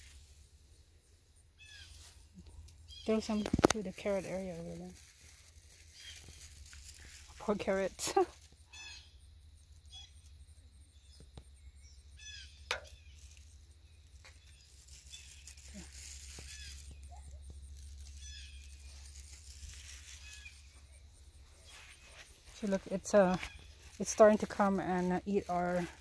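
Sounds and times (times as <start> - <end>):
low steady rumble: 0.0 - 26.0
short chirping calls: 8.7 - 22.7.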